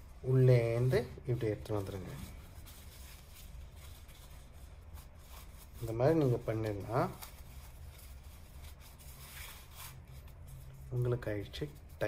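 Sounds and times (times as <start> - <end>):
low steady hum: 0.0 - 12.0
necktie fabric rustling: 0.0 - 12.0.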